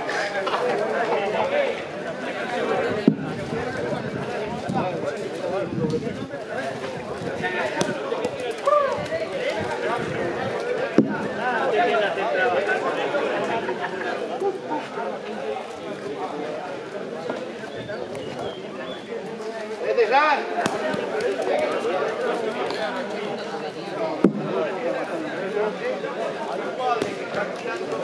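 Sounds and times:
people talking in background: 0:00.0 - 0:28.0
sharp knocks: 0:03.0 - 0:03.4, 0:11.0 - 0:11.4.

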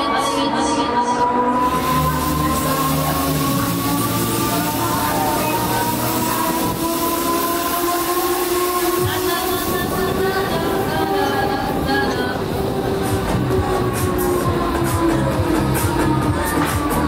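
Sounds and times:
fairground ride two-tone chord: 0:00.0 - 0:17.0.

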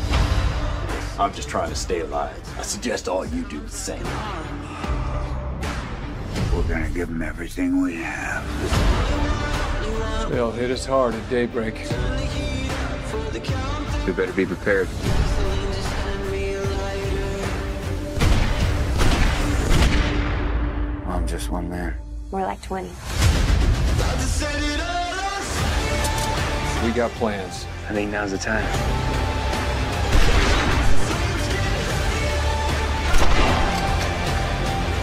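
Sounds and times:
dramatic trailer music: 0:00.0 - 0:35.0
loud gunshots: 0:30.1 - 0:31.2, 0:33.1 - 0:33.9.

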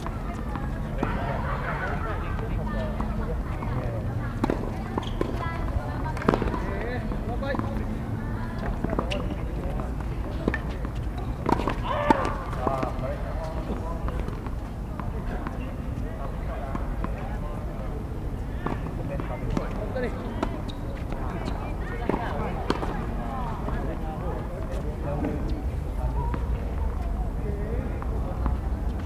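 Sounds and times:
tennis ball bouncing on hard court: 0:02.9 - 0:07.9, 0:08.6 - 0:15.7, 0:18.6 - 0:23.9.

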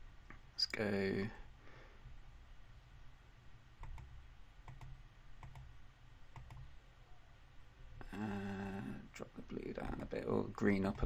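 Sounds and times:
computer mouse clicking: 0:03.8 - 0:06.8
person humming low: 0:08.0 - 0:09.0.

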